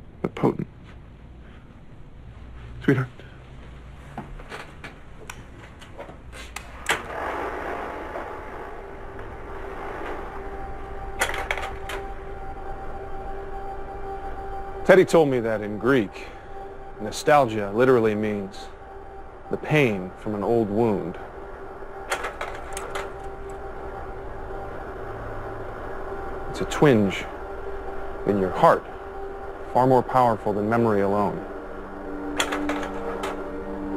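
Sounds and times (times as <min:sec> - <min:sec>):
slide projector fan hum: 0:00.0 - 0:33.9
projector mechanical clicks: 0:32.3 - 0:33.5.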